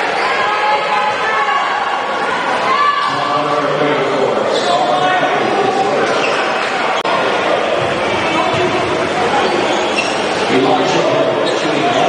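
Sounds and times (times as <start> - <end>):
voices in gymnasium: 0.0 - 12.0.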